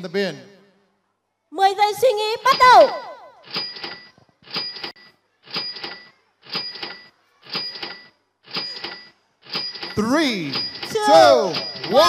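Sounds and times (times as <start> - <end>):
timer ticking with metallic tone: 2.4 - 12.0.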